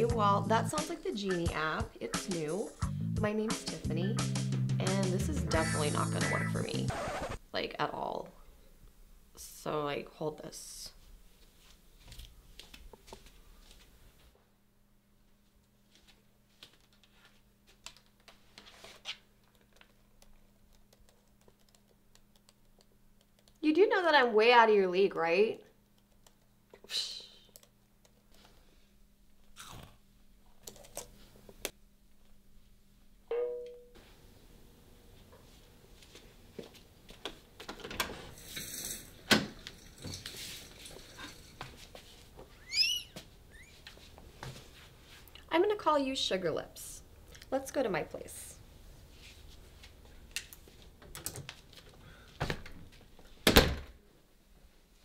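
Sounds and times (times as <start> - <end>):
carrot crunching: 29.6 - 30.0.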